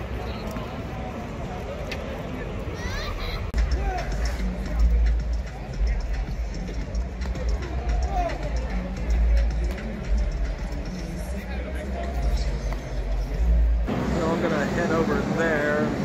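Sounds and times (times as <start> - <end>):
fans chattering: 0.0 - 16.0
music over public address system: 3.6 - 16.0.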